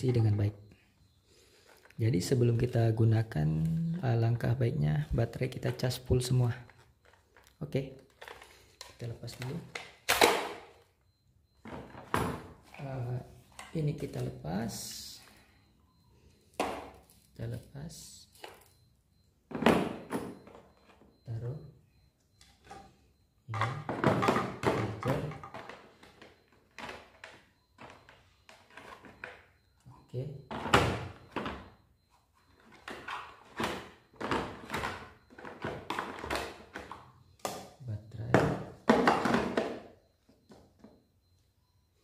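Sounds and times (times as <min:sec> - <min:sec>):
objects knocking into plastic case: 0:38.3 - 0:39.9.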